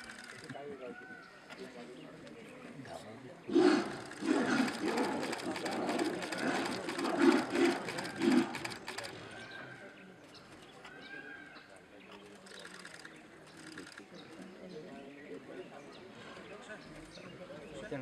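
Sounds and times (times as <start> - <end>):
tigers snarling and roaring: 3.4 - 9.4.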